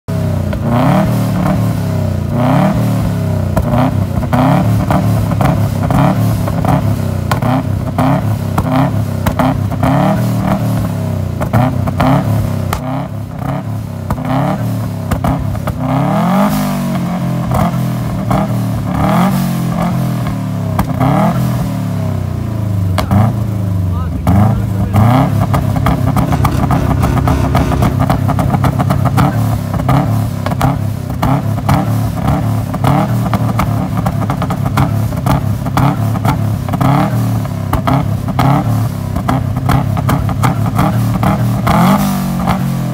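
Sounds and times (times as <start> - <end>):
car engine revving: 0.1 - 42.8
exhaust pops: 24.2 - 31.8.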